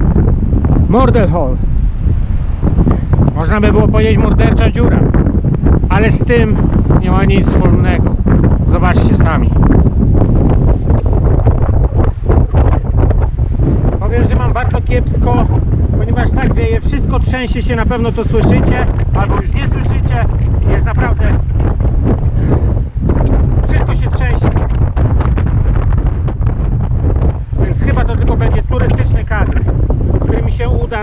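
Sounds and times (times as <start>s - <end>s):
gusty wind buffeting microphone: 0.0s - 31.0s.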